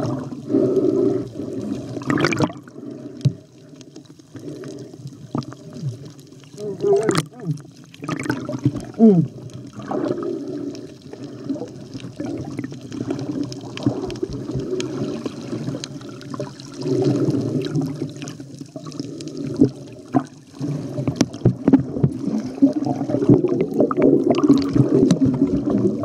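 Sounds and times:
water sloshing and gurgling: 0.0s - 26.0s.

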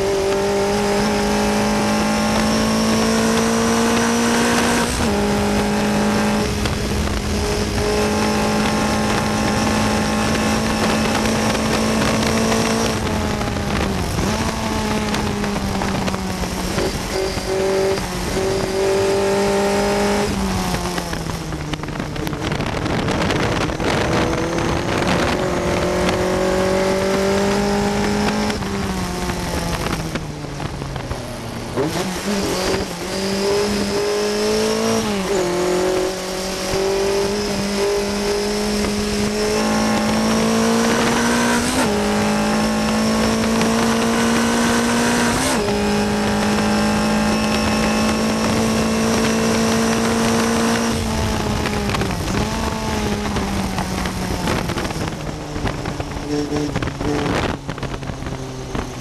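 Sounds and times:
racing car engine: 0.0s - 59.0s
wind noise: 0.0s - 59.0s.

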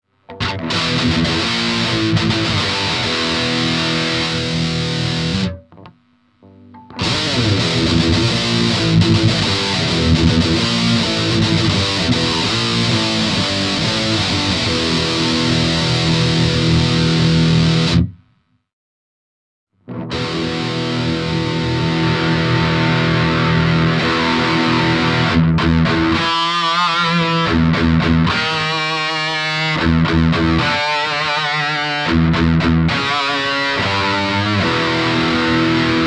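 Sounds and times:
distorted electric guitar: 0.0s - 18.7s, 19.8s - 36.0s.

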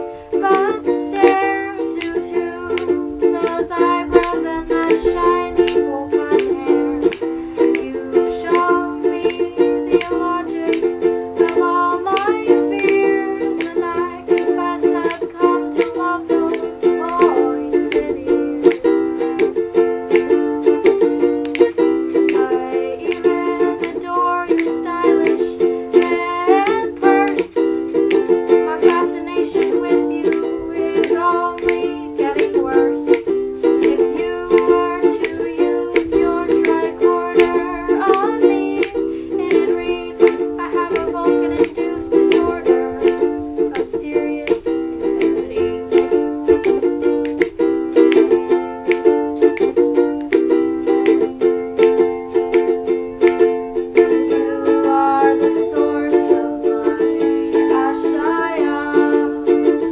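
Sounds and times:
ukulele strumming: 0.0s - 59.9s
woman singing: 0.0s - 59.9s.

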